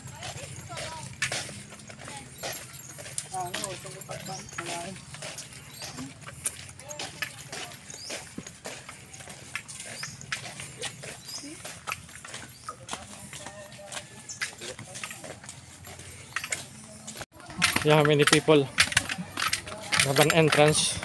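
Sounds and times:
flip-flop footsteps on concrete: 0:00.0 - 0:21.0.

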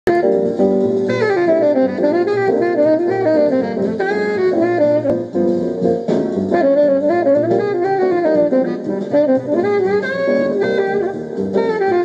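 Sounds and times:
jazz saxophone melody: 0:00.1 - 0:12.0
lower accompaniment: 0:00.1 - 0:12.0.

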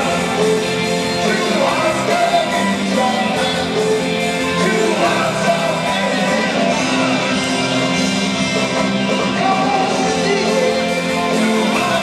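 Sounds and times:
live rock band in arena: 0:00.0 - 0:12.0.

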